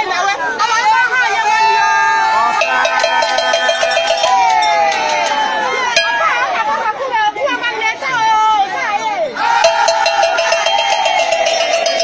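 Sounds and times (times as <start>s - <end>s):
long held call: 2.6s - 6.9s, 9.6s - 12.0s.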